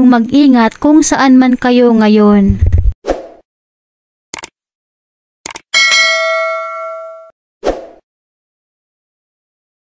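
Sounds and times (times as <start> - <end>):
bright metallic bell ding: 5.8 - 7.3.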